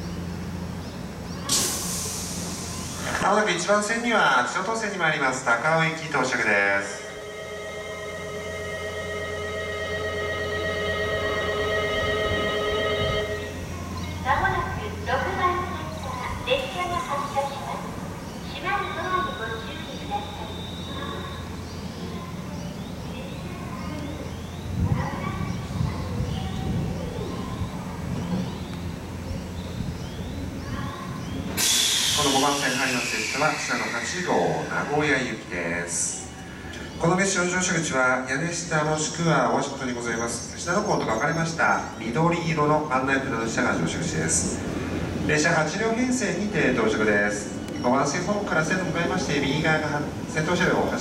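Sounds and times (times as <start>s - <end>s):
small birds chirping: 0.0s - 1.5s, 13.4s - 37.8s, 39.1s - 42.9s, 46.2s - 51.0s
electric train rumbling: 0.0s - 51.0s
loud hiss: 1.4s - 3.6s, 31.4s - 35.4s
electronic departure bell ringing: 6.4s - 14.3s.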